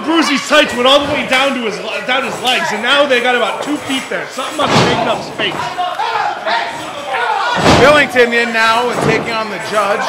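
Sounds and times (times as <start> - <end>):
voices: 0.0 - 10.0
heavy slam on wrestling ring: 7.6 - 8.1.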